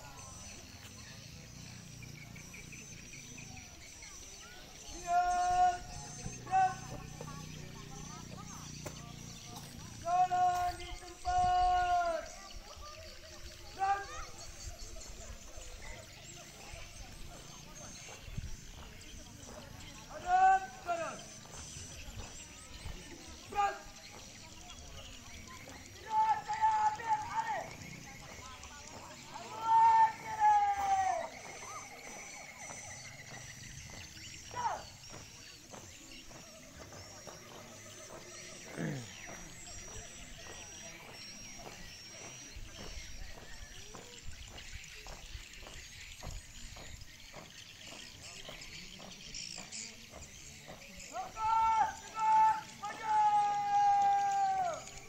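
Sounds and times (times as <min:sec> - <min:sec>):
stamping marching footsteps: 0:17.2 - 0:24.8, 0:26.0 - 0:52.1
person shouting drill commands: 0:23.5 - 0:23.9, 0:26.0 - 0:27.7, 0:29.4 - 0:31.3, 0:51.1 - 0:54.9.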